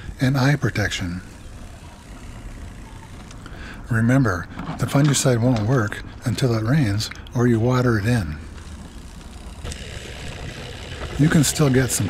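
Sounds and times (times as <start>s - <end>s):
spreader mechanical whirring: 0.0s - 4.9s, 8.1s - 12.0s.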